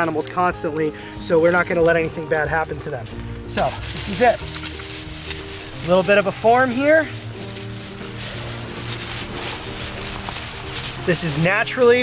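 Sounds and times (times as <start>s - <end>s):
background music: 0.0s - 12.0s
hand raking through dry leaves: 1.5s - 12.0s.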